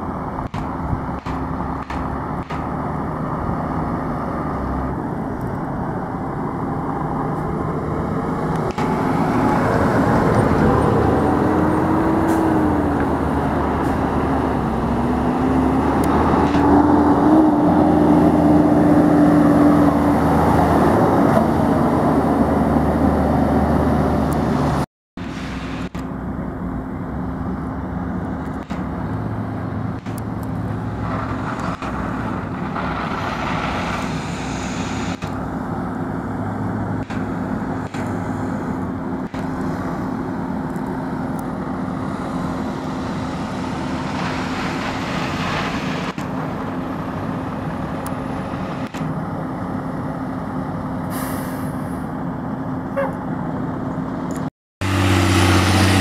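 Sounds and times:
diesel engine passing close by: 0:00.0 - 0:56.0
drone of fire engines running: 0:00.0 - 0:56.0.

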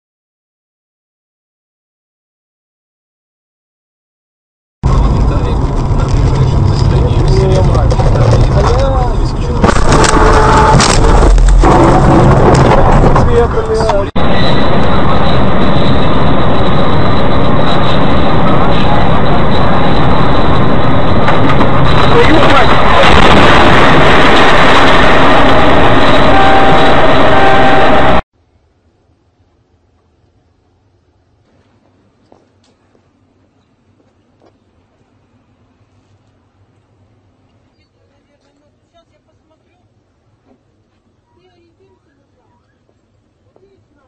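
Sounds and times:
loud rushing noise: 0:04.8 - 0:28.2
vehicle in motion: 0:04.8 - 0:44.0
voices: 0:05.3 - 0:10.8, 0:12.6 - 0:14.2, 0:37.6 - 0:40.6, 0:41.2 - 0:44.0.

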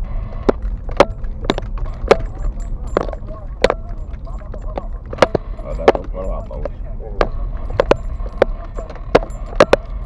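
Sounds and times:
low road rumble: 0:00.0 - 0:10.0.

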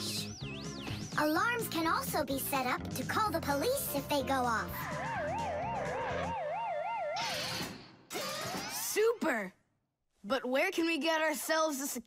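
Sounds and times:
cartoon alarm siren warbling: 0:04.7 - 0:08.8.

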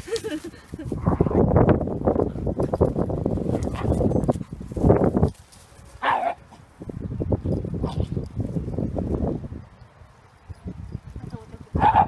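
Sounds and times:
dogs scuffling: 0:01.9 - 0:06.4.

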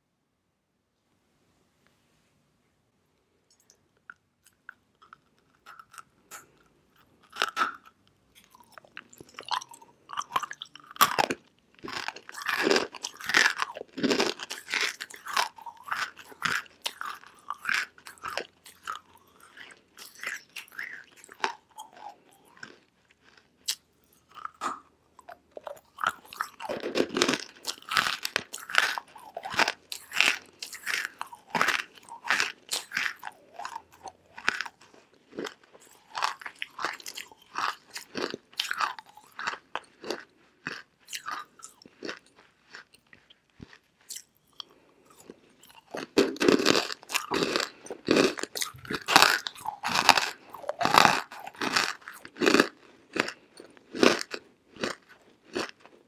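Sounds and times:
crunching and chewing clay: 0:04.4 - 0:56.0.

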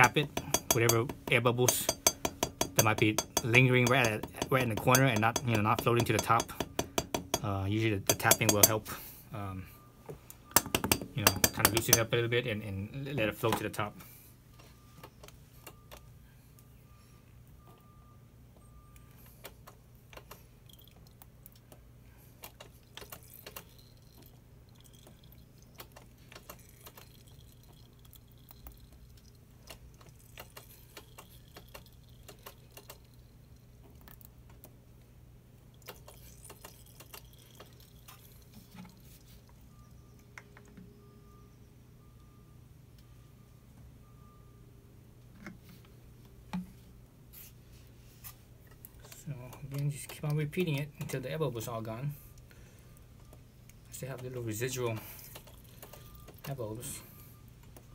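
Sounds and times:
wrench clicks and taps: 0:00.3 - 0:07.5, 0:10.5 - 0:12.1.

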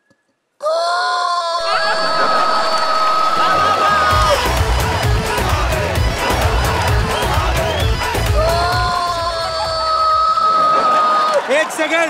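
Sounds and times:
audience cheering and laughing: 0:01.6 - 0:12.0
low music beat: 0:01.7 - 0:09.5.

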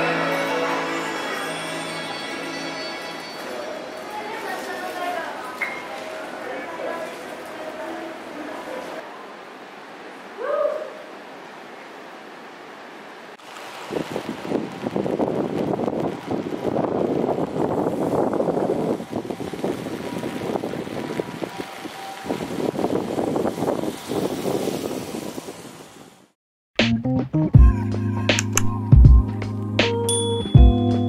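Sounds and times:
rain on wooden deck: 0:00.0 - 0:26.4.

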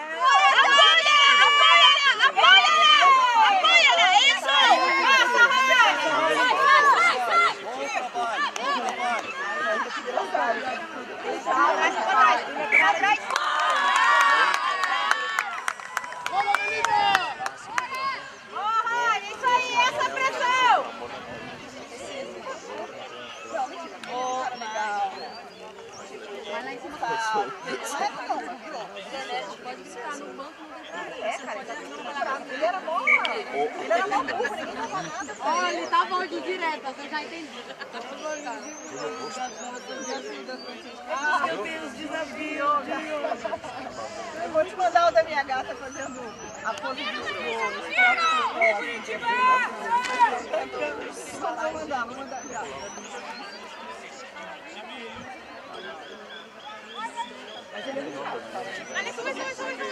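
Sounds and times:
people chatting: 0:00.0 - 0:59.9
people talking and calling: 0:00.0 - 0:59.9.

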